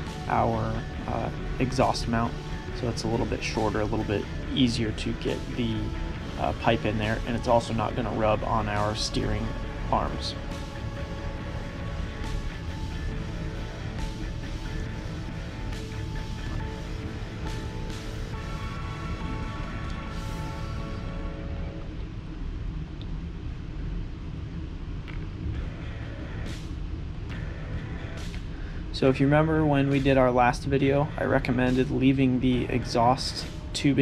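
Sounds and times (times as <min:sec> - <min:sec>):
background music: 0:00.0 - 0:22.4, 0:25.1 - 0:34.0.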